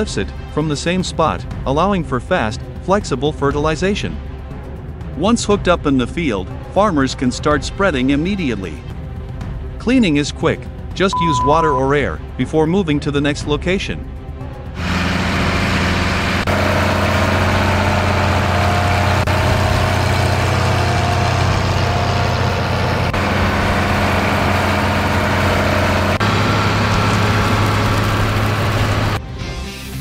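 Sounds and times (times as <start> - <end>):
tractor engine running: 14.8 - 29.2.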